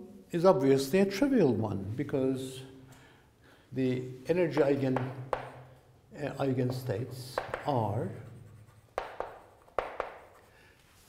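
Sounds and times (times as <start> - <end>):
chalk tapping on blackboard: 4.5 - 5.8, 6.5 - 10.5.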